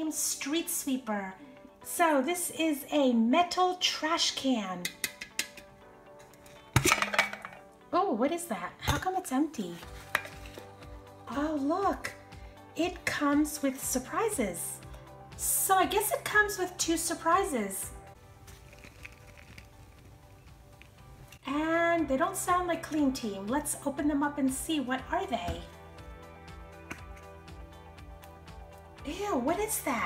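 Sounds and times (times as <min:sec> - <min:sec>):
faint background music: 0:00.0 - 0:30.0.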